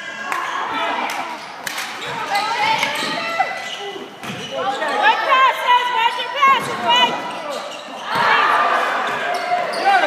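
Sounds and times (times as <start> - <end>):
sneakers squeaking on court: 1.4 - 5.2, 6.5 - 10.0
basketball bouncing: 4.2 - 4.5.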